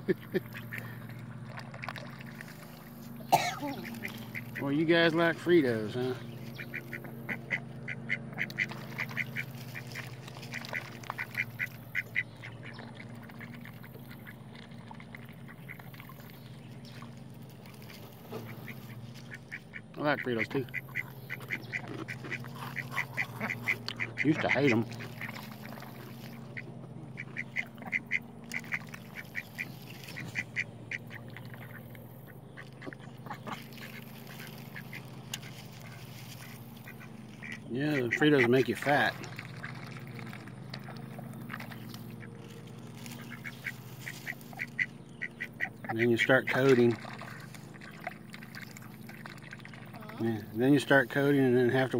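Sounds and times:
ducks quacking: 0.0 - 51.9
steady low hum: 0.0 - 51.9.

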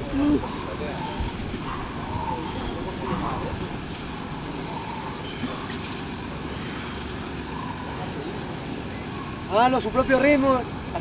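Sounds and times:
faint distant voices: 0.0 - 11.0
low outdoor background noise: 0.0 - 11.0.

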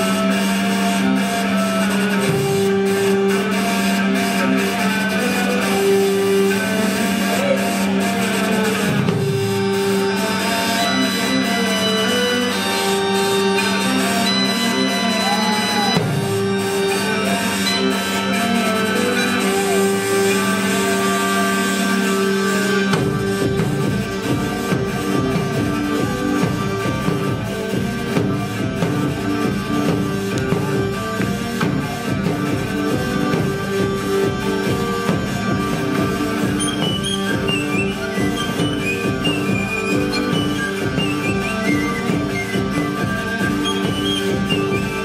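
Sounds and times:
hurdy-gurdy drone: 0.0 - 45.0
reedy melody: 0.0 - 45.0.

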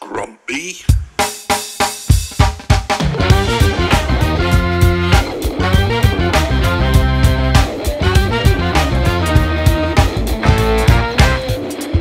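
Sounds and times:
drum kit beat: 0.8 - 12.0.

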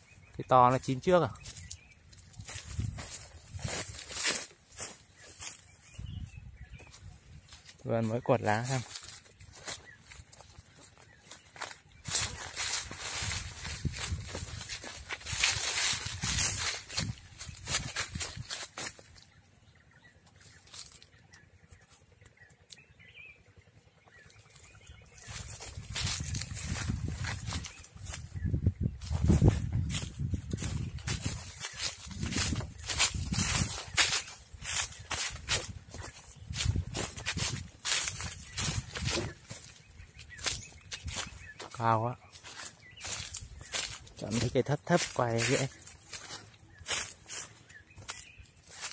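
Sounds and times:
footsteps crunching dry leaves: 0.1 - 22.9, 24.0 - 48.9.

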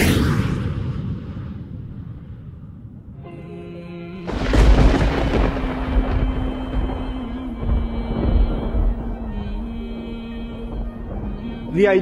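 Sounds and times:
deep boom: 4.3 - 11.8.

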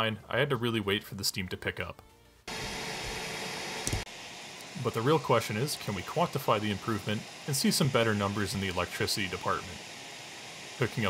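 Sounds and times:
steam hissing: 2.5 - 11.0.

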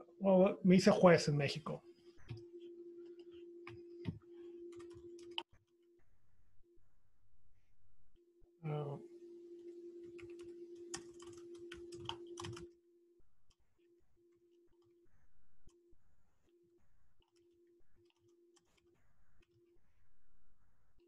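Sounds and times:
low electronic hum: 0.0 - 21.0
computer keyboard typing: 3.1 - 5.5, 10.0 - 12.7, 17.2 - 19.6.

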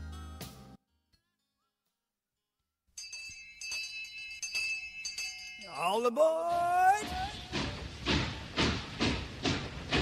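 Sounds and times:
locomotive bell ringing: 3.0 - 6.9
train whistle: 7.0 - 7.9.

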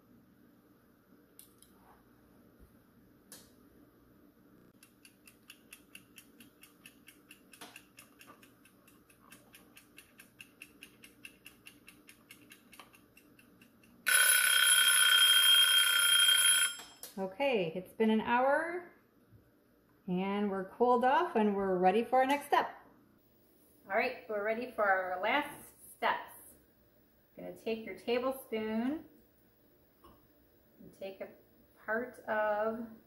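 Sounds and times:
timer ticking quickly: 4.8 - 14.0
alarm ringing: 14.1 - 17.0.

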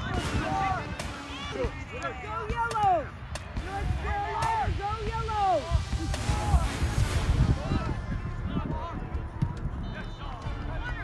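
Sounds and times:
voices shouting and calling out: 0.0 - 11.0
steady low rumble: 3.1 - 10.8.

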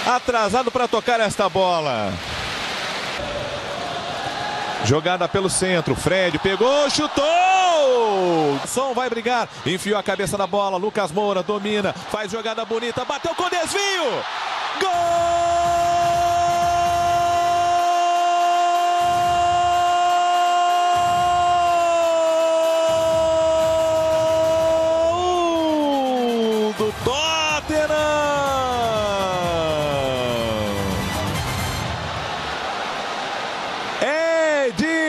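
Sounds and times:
commentator's long goal cry: 14.8 - 30.9.

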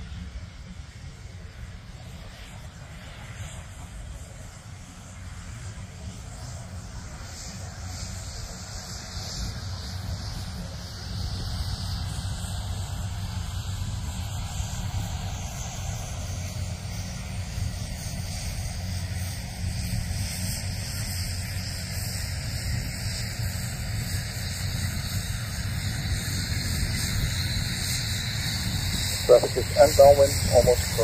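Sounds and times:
distant propeller aircraft engine drone: 0.0 - 31.0.

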